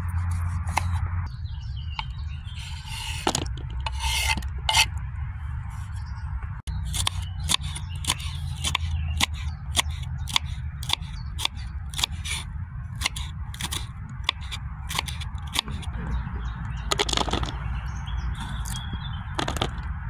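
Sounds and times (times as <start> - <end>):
low steady hum: 0.0 - 16.9
knife slicing on wooden board: 2.6 - 4.9.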